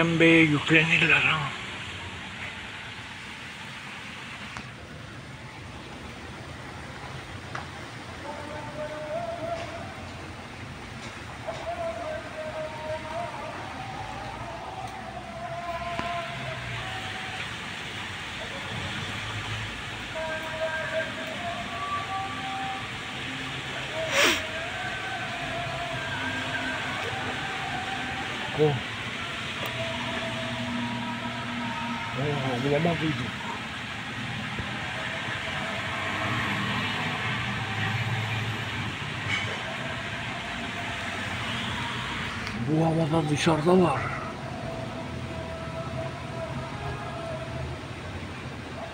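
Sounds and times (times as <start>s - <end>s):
heavy rain on paving and foliage: 0.0s - 48.9s.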